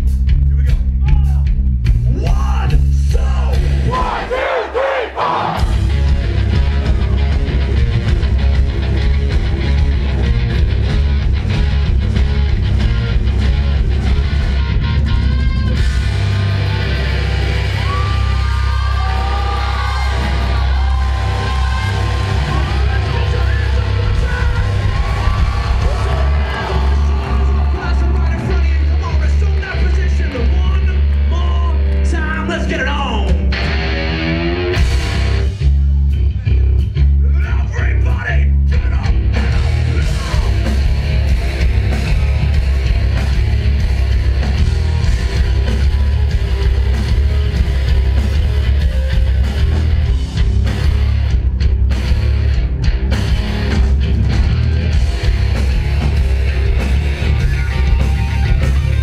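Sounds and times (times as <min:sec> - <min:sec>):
rock band playing loud: 0:00.0 - 0:59.0
crowd yelling along: 0:03.5 - 0:08.4, 0:14.2 - 0:31.8, 0:39.3 - 0:51.4, 0:53.2 - 0:59.0.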